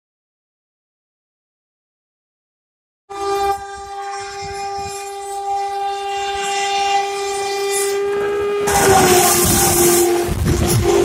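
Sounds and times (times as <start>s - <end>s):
locomotive horn blast: 3.1s - 11.0s
train rumbling: 3.1s - 11.0s.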